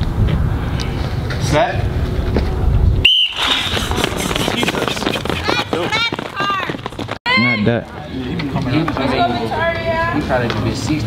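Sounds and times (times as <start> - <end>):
feet scuffing along track: 3.4 - 7.2.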